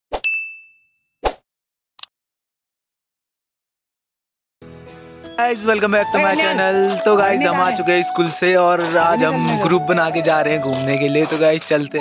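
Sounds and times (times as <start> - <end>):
bright ding: 0.2 - 1.0.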